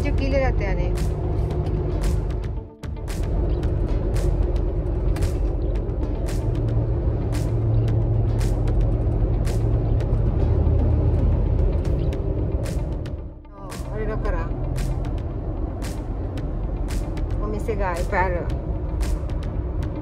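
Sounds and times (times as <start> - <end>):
truck drone: 0.0 - 20.0
tyre and engine rumble: 0.0 - 20.0.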